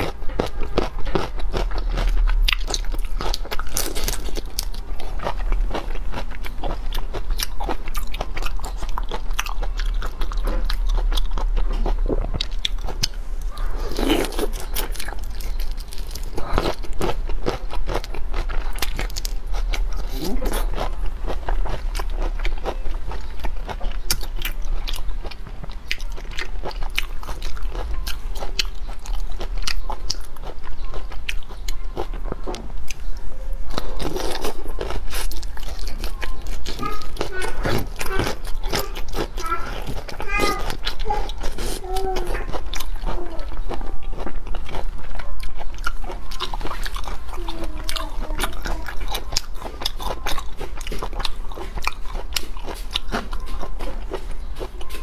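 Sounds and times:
shrimp shell crunching and chewing: 0.0s - 55.0s
person speaking: 20.0s - 21.3s.

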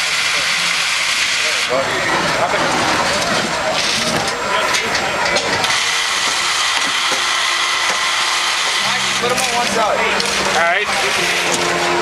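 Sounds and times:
gas burners roaring: 0.0s - 12.0s
high steady tone: 5.6s - 12.0s.

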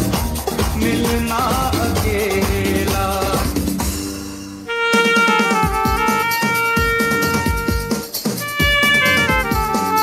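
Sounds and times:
electronic backing track: 0.0s - 10.0s
saxophone long note: 4.7s - 10.0s.

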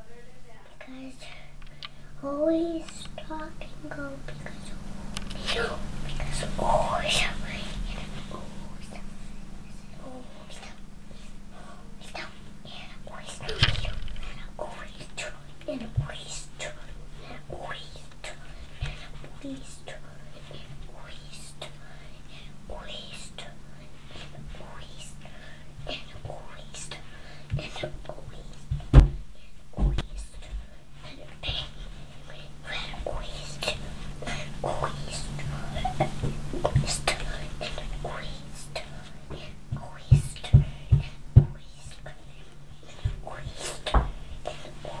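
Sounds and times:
steady low hum: 0.0s - 45.0s
girl whispering: 0.5s - 28.6s, 30.1s - 45.0s
knock: 28.7s - 29.2s.

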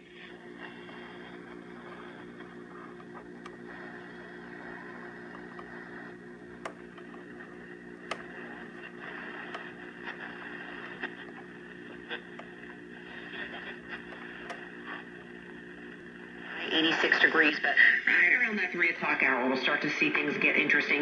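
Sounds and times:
low hum: 0.0s - 19.5s
radio static hiss: 0.0s - 21.0s.

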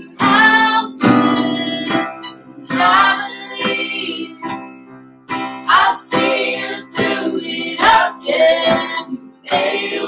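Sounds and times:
women singing together: 0.0s - 4.5s, 5.7s - 10.0s
keyboard: 0.0s - 10.0s
strummed acoustic guitar: 0.0s - 10.0s.

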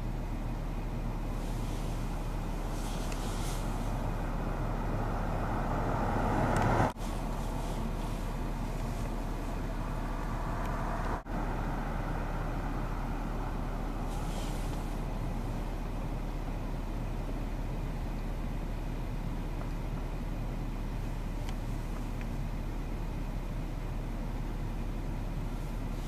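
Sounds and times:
road traffic noise: 0.0s - 26.0s
vehicle passing by: 1.4s - 15.7s.

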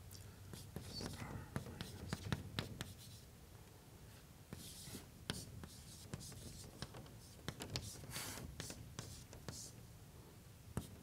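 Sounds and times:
chalk tapping on blackboard: 0.5s - 3.2s, 4.5s - 9.8s, 10.8s - 11.0s
chalk scratching on blackboard: 0.5s - 3.3s, 4.5s - 9.8s, 10.8s - 11.0s.

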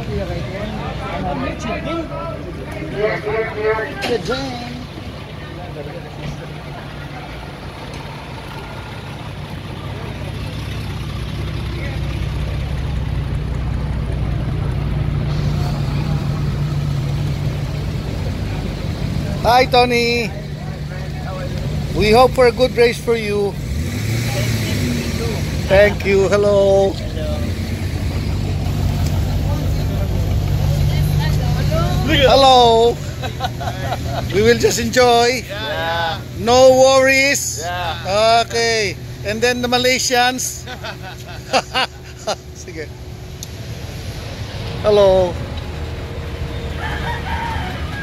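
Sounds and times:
car engine idling: 0.0s - 48.0s.

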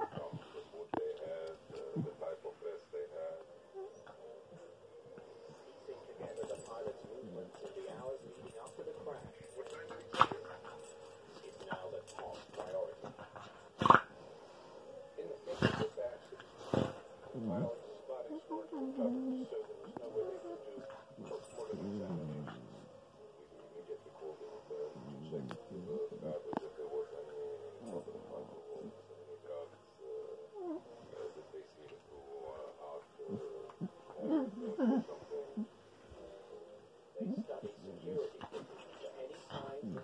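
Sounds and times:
pet whining: 3.5s - 7.8s, 8.4s - 14.3s, 16.6s - 23.1s, 30.0s - 32.4s, 33.2s - 36.3s
small dogs play-fighting: 8.4s - 14.2s.

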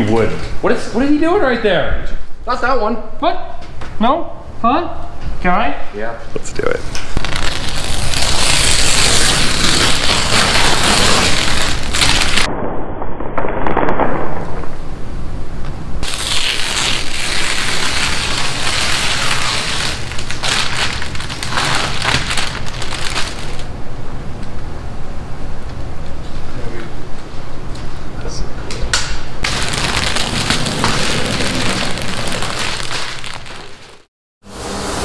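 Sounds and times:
masking tape ripping: 7.0s - 12.5s, 16.0s - 23.7s, 29.4s - 34.1s
paper and plastic crinkling: 7.2s - 12.5s, 16.0s - 23.7s, 29.4s - 34.1s.

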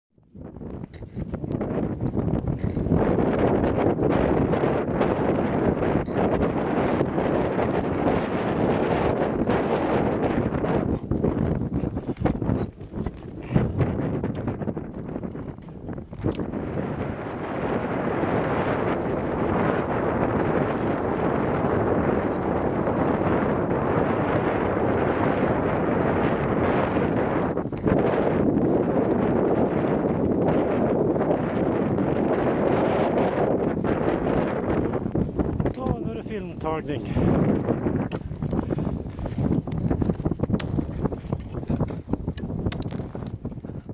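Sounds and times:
wind buffeting microphone: 0.1s - 43.9s.

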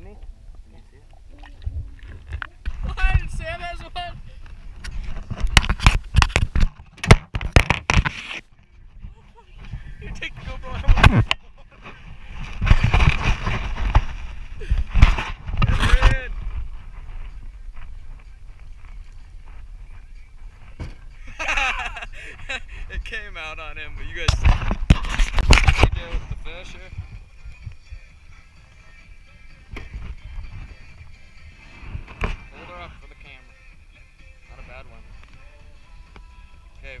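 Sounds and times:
sharp knocks and thumps: 5.4s - 8.2s.

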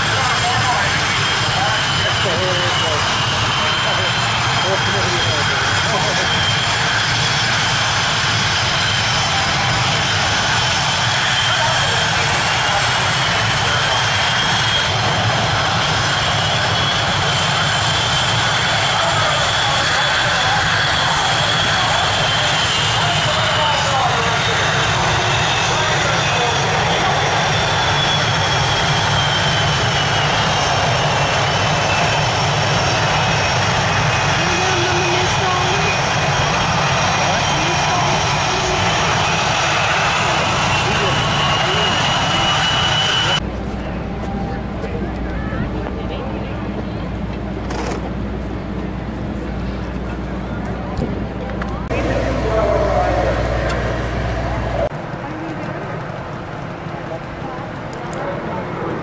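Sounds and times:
jet aircraft flying past: 0.0s - 59.0s.

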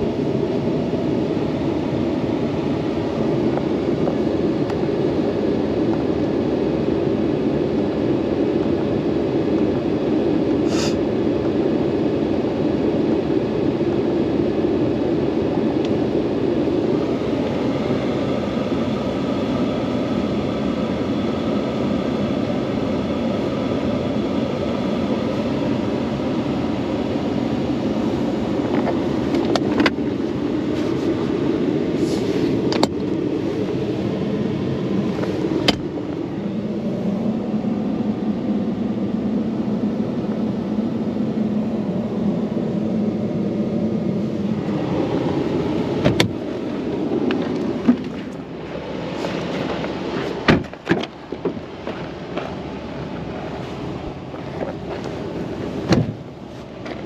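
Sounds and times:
pickup engine idling: 15.8s - 57.0s.

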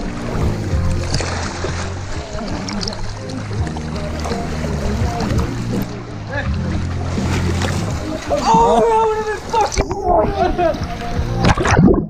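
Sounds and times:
music with deep bass line: 0.0s - 9.0s, 9.8s - 12.0s
pool water sloshing: 0.0s - 12.0s.

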